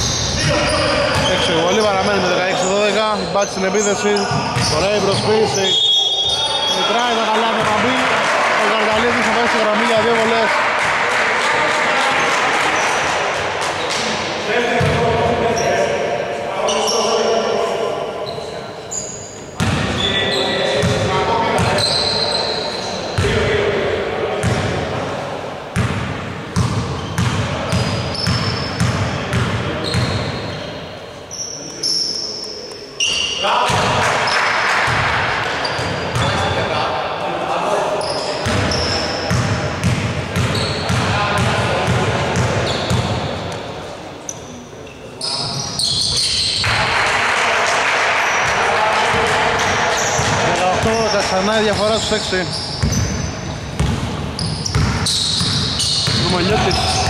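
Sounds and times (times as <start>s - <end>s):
shoes squeaking: 0.0s - 7.8s, 21.6s - 23.0s, 29.8s - 33.5s, 40.4s - 41.0s, 44.3s - 46.7s, 49.9s - 57.0s
basketball bouncing on wooden court: 14.8s - 15.1s, 19.6s - 20.0s, 25.8s - 30.3s, 38.4s - 43.3s, 52.8s - 57.0s
players calling out: 54.4s - 57.0s.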